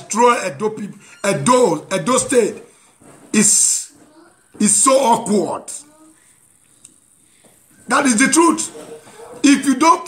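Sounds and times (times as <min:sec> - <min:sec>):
man speaking: 0:00.0 - 0:04.0, 0:04.6 - 0:05.9, 0:07.8 - 0:10.0.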